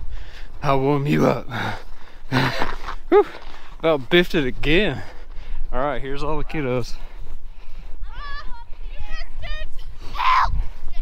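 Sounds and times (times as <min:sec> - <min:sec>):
child calling from far off: 0:08.0 - 0:11.0.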